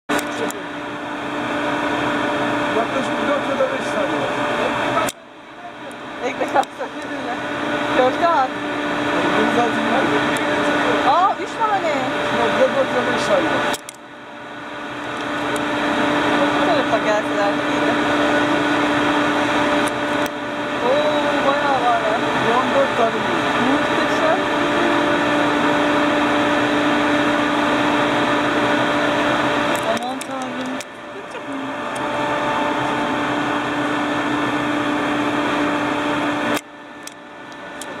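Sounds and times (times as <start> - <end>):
ship machinery humming: 0.1 - 38.0.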